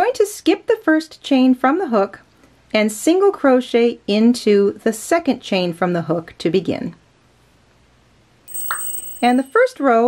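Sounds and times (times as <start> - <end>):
bright bell-like chime: 8.5 - 9.8.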